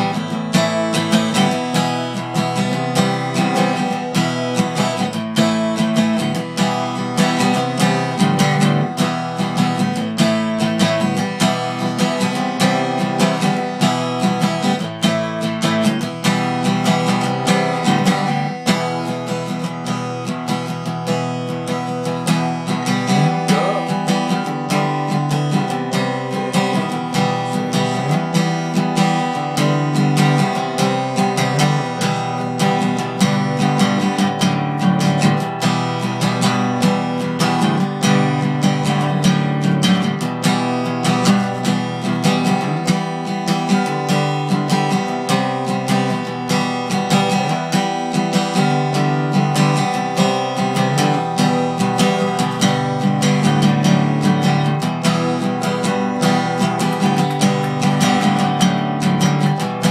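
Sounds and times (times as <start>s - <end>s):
acoustic guitar strumming: 0.0s - 59.9s.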